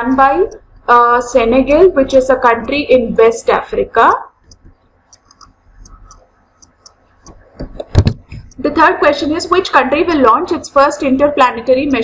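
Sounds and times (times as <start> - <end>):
stylus tapping a tablet: 4.4 - 8.8.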